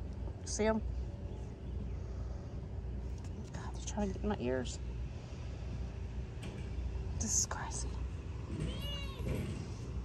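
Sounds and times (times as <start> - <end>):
low outdoor background rumble: 0.0 - 10.0.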